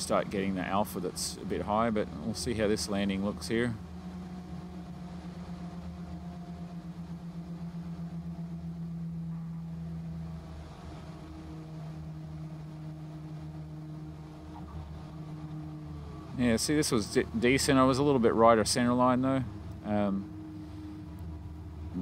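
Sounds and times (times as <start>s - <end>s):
aircraft engine and propeller drone: 0.0s - 22.0s.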